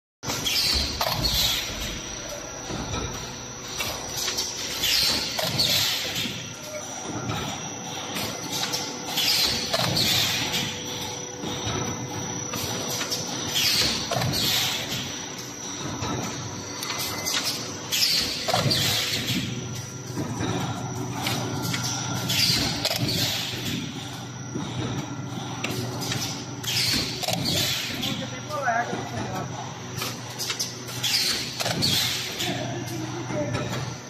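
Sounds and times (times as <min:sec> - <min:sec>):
machine hum: 0:00.2 - 0:34.0.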